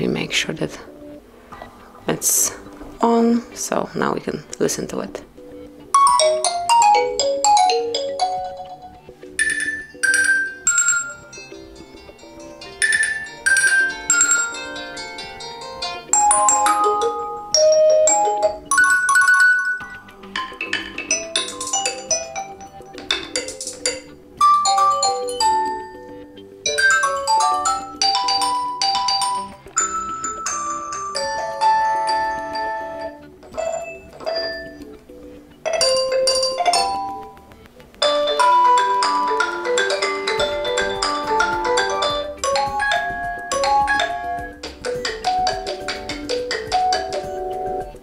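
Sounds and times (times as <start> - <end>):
phone ringtone chiming melodies: 5.9 - 37.4, 38.0 - 48.0.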